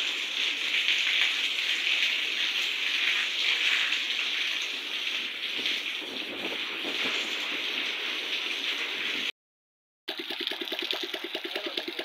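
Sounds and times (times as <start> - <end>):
heavy rain on wet paving: 0.0 - 9.3.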